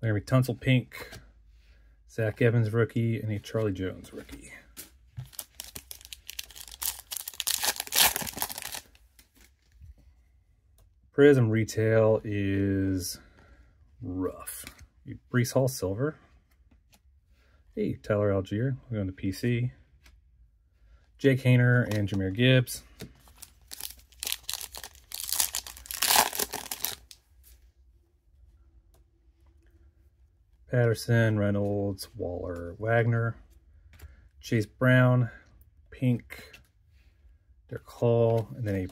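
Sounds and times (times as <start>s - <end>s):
foil pack tearing and crinkling: 5.3s - 8.9s, 23.4s - 27.1s.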